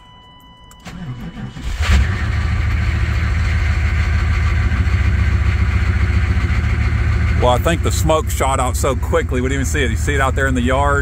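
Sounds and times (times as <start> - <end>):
diesel engine idling: 0.8 - 11.0.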